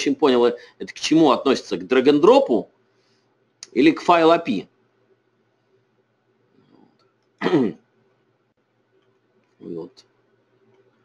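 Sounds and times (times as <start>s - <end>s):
man clearing his throat: 7.4s - 7.8s.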